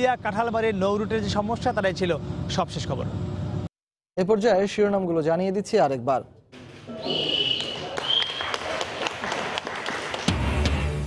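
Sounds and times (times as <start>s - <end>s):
scattered clapping: 7.4s - 10.9s.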